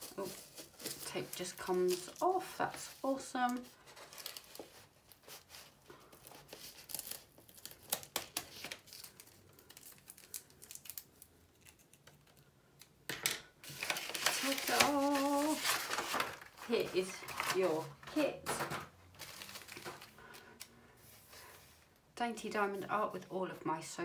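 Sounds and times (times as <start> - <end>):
paper crinkling and rustling: 0.0 - 12.4, 13.6 - 21.8.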